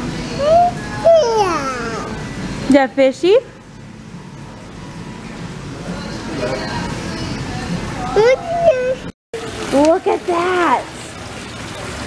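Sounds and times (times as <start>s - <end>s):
shop background hum and hiss: 0.0s - 12.0s.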